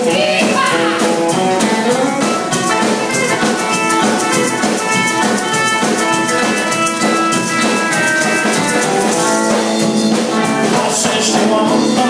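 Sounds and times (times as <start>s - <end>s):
electric guitar: 0.0s - 12.0s
fast drum beat: 0.0s - 12.0s.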